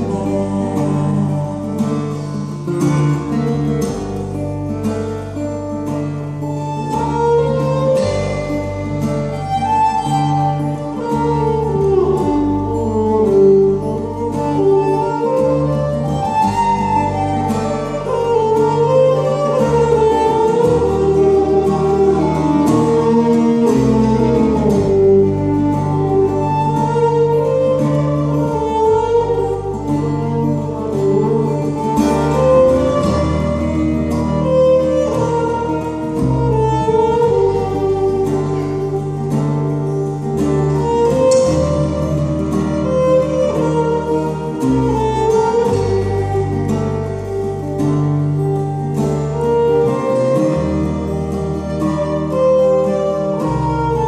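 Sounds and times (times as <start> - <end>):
bass line: 0.0 - 54.0
fiddle melody: 0.0 - 54.0
strummed acoustic guitar: 0.0 - 54.0.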